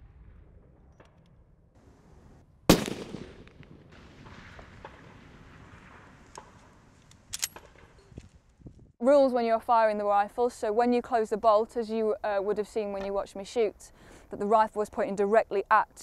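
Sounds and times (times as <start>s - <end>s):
rifle shot: 2.7s - 8.0s
sharp clicks: 6.3s - 7.7s.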